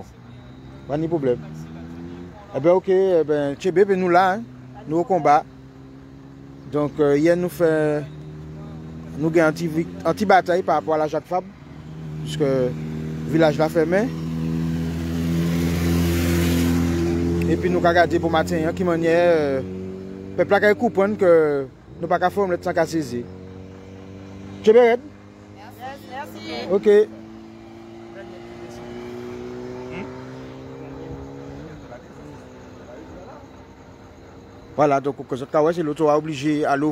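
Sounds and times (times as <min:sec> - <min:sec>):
vehicle engine humming: 0:00.0 - 0:36.9.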